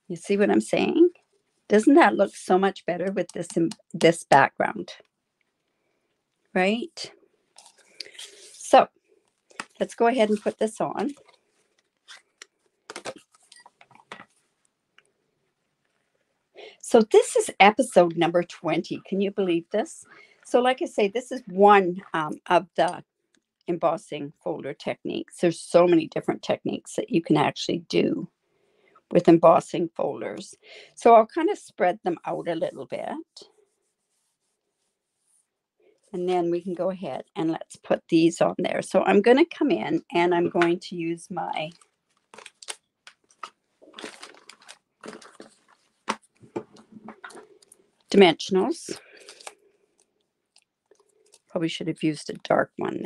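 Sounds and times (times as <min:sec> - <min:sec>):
hands rubbing paper: 0:09.4 - 0:14.6, 0:33.4 - 0:36.1
cardstock paper rustling: 0:09.6 - 0:14.4, 0:42.1 - 0:47.4.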